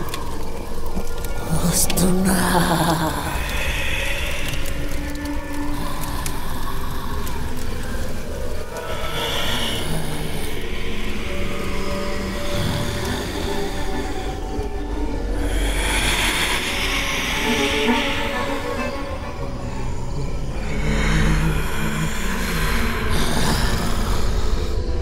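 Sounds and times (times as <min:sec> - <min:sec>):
eerie horror film score: 0:00.0 - 0:25.0.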